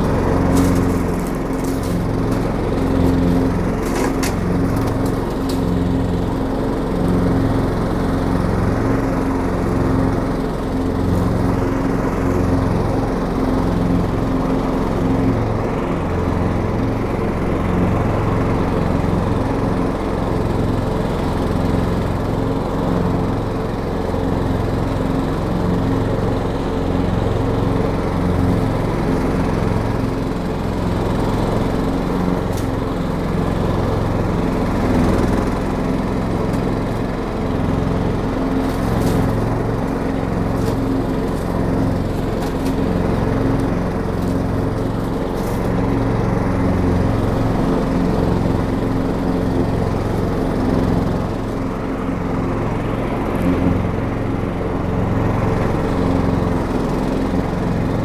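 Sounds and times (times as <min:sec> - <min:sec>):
ride-on mower running: 0:00.0 - 0:58.0.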